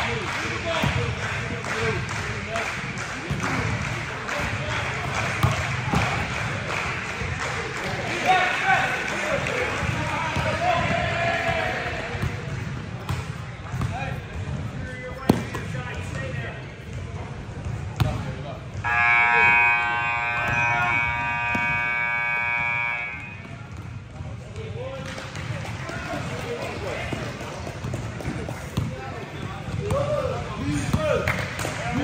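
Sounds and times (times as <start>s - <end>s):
players' voices: 0.0s - 32.0s
basketball bouncing on gym floor: 10.4s - 14.7s, 27.6s - 29.0s
electronic buzzer: 18.9s - 23.4s.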